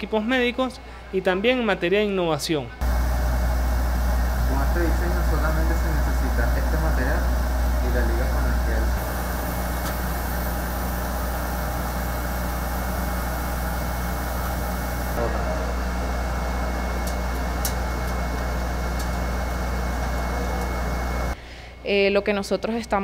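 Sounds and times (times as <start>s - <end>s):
laser cutting machine humming: 2.8s - 21.4s.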